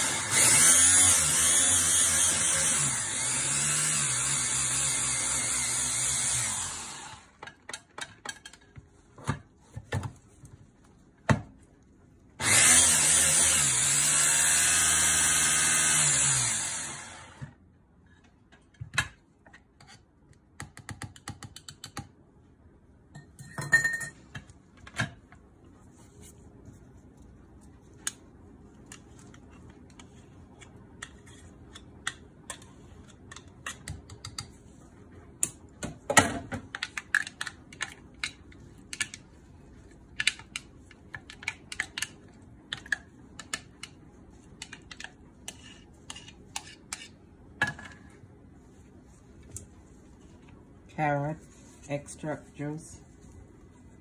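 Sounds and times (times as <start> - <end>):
blender motor winding down: 0.0 - 7.4, 12.4 - 17.5
spatula scraping plastic bowl: 44.5 - 47.2.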